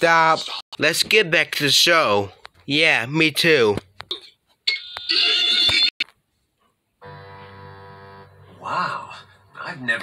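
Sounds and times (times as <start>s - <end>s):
keyboard chords from a tv: 7.0s - 10.0s.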